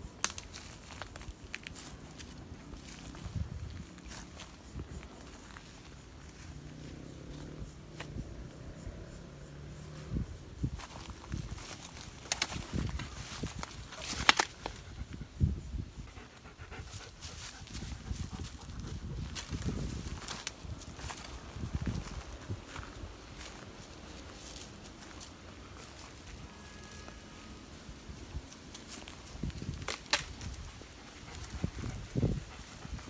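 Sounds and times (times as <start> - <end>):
footsteps crunching through dry leaves: 0.1 - 8.2, 9.9 - 14.8, 16.8 - 33.0
twigs snapping: 0.2 - 1.9, 11.6 - 14.8, 28.7 - 30.7
dog panting: 16.0 - 19.1, 30.7 - 33.0.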